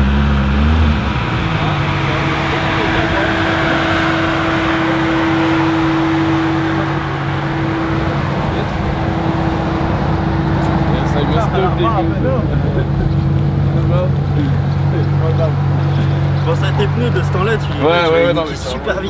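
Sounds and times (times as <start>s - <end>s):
car engine idling: 0.0s - 19.0s
people talking: 1.3s - 19.0s.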